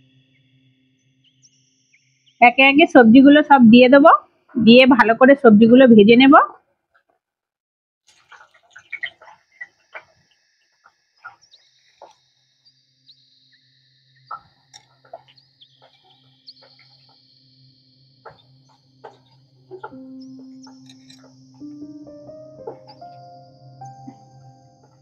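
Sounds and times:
oil crackling and popping: 8.1 - 10.4.

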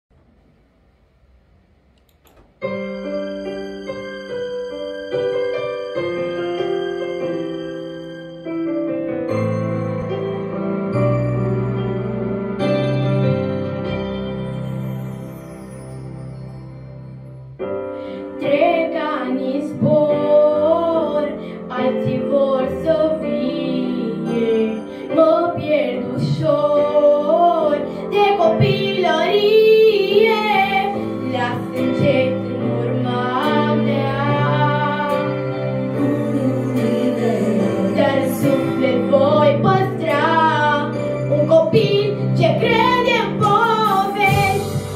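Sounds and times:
instrumental backing track: 1.8 - 44.9
faint clicks: 1.9 - 2.5
electric piano chords: 2.0 - 44.9
girl singing pop ballad: 18.0 - 44.9.

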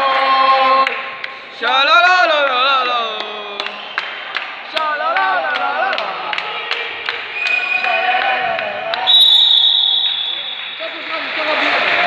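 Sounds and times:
people shouting: 5.0 - 9.3.

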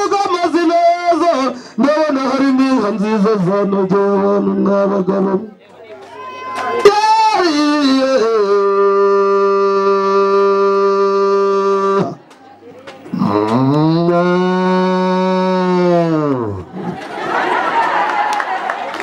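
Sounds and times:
cow mooing: 13.1 - 16.6.

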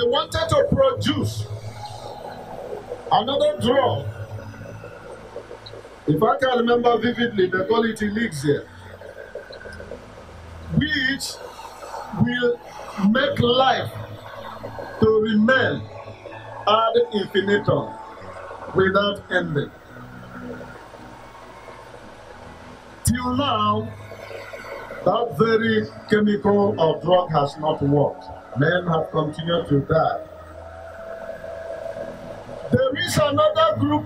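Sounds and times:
faint low tones: 0.0 - 34.0
low steady hum: 0.0 - 34.0.

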